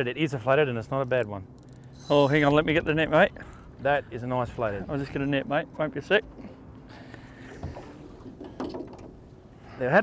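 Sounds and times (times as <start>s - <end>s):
fishing reel clicking and whirring: 1.6s - 2.6s.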